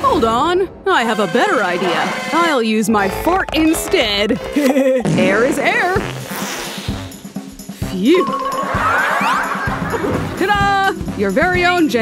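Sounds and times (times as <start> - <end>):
background music with drum beat: 3.0 - 12.0.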